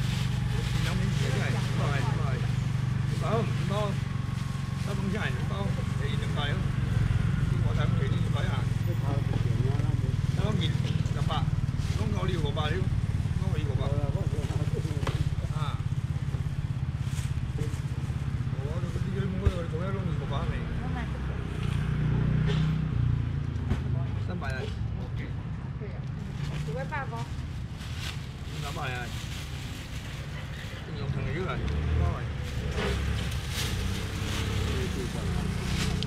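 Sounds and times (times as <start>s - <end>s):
voices talking and calling: 0.0s - 36.0s.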